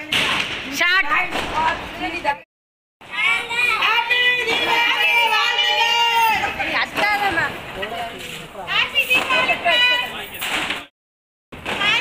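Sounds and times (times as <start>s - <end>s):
people shouting and cheering: 3.0s - 7.4s.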